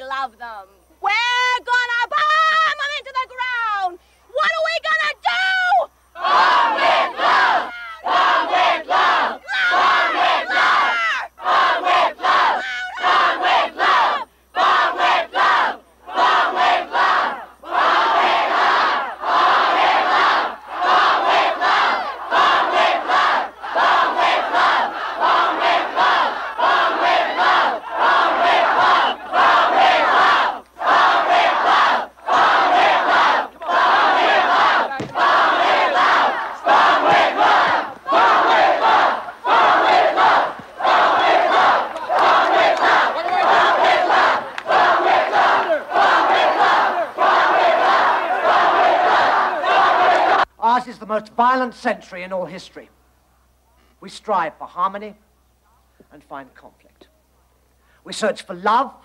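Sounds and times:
crowd chanting in unison: 0:06.1 - 0:50.5.

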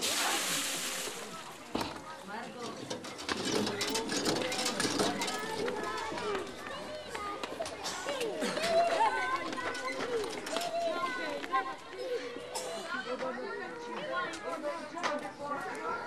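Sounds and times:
chatter of voices: 0:00.0 - 0:16.0.

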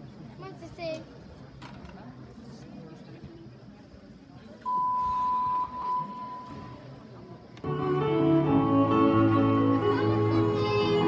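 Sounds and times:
high electronic beep: 0:04.7 - 0:06.8.

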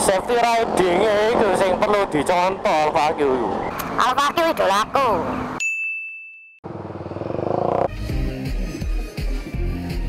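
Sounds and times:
motorcycle engine: 0:06.6 - 0:08.1
music with heavy bass beat: 0:07.9 - 0:10.0.

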